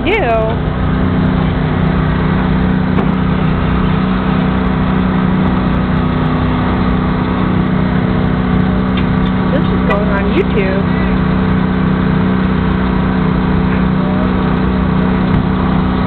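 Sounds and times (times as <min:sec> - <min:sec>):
truck engine idling: 0:00.0 - 0:16.0.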